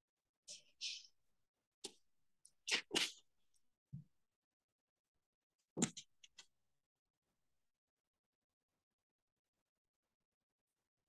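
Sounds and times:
person sneezing: 2.7s - 3.2s.

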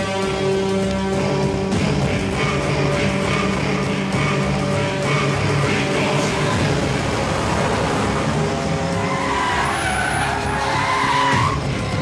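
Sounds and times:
vehicle noise rushing: 1.9s - 12.0s
car tyres squealing: 6.3s - 12.0s.

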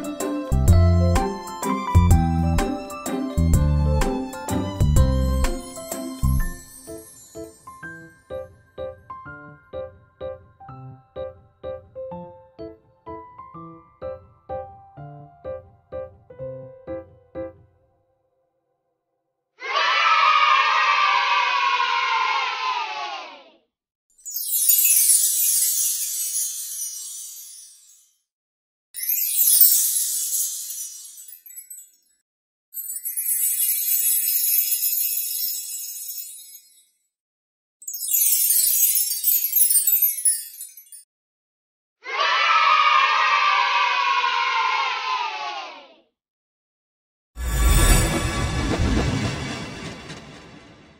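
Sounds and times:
children cheering: 19.6s - 23.5s, 42.0s - 45.9s.

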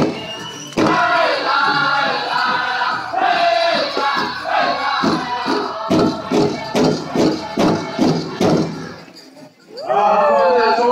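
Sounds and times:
big drum strokes: 0.0s - 9.0s
group singing high-pitched song: 0.0s - 10.1s.

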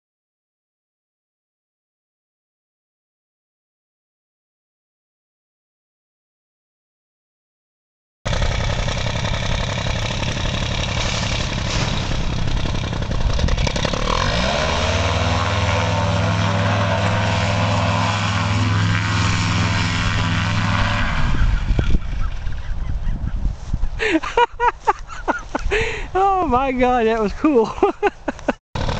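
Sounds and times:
paramotor engine and propeller: 8.3s - 23.1s, 27.1s - 28.9s.

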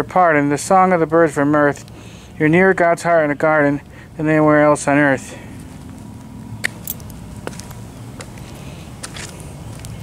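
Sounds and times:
low outdoor rumble: 0.0s - 10.0s
footsteps on stone paving: 5.6s - 10.0s.

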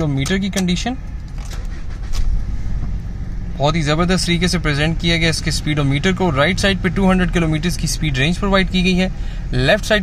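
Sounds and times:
vehicle rumble inside car cabin: 0.0s - 10.0s.

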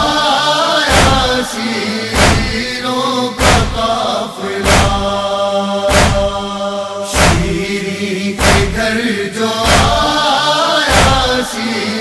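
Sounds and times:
man chanting a lament: 0.0s - 12.0s
chest-beating thuds: 0.9s - 1.4s, 2.1s - 2.8s, 3.4s - 4.0s, 4.6s - 5.2s, 5.9s - 6.5s, 7.1s - 7.7s, 8.4s - 8.9s, 9.6s - 10.1s, 10.9s - 11.3s.

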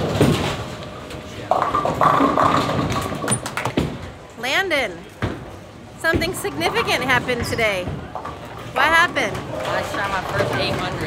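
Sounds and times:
bowling ball striking pins: 1.5s - 4.1s.

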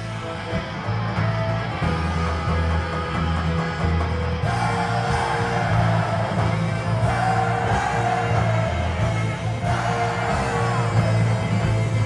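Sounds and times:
rock band music with singer: 0.0s - 12.0s.

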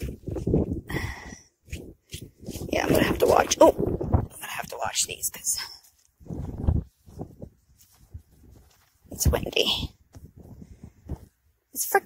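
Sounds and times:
wind gusting on microphone: 0.0s - 5.5s, 6.2s - 11.4s.

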